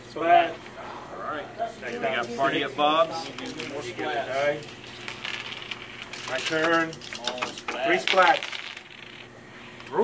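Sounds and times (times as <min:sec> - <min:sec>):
plastic dice rattling: 0:05.1 - 0:09.3.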